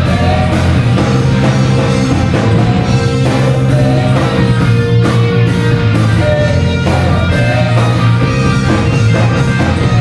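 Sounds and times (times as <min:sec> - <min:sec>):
rock band playing loudly: 0:00.0 - 0:10.0.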